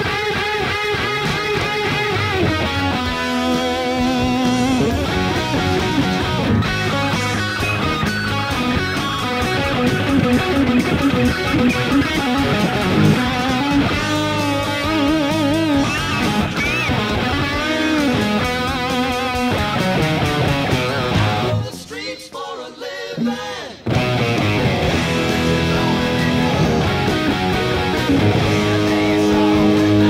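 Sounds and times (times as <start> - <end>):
electric guitar lead: 0.0 - 21.9, 23.2 - 30.0.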